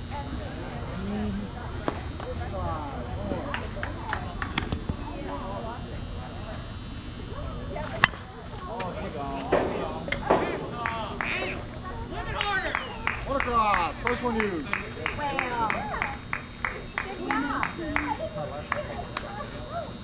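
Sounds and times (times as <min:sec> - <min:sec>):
distant voices chattering: 0:00.0 - 0:20.0.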